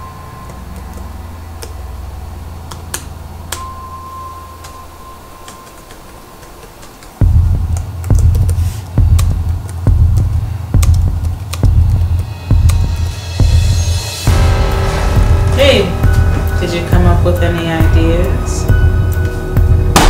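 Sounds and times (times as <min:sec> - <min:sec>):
low steady drone: 0:00.0 - 0:06.4, 0:07.2 - 0:20.0
laptop keyboard typing: 0:00.4 - 0:01.9, 0:05.4 - 0:12.9
deep bass pulse: 0:07.2 - 0:20.0.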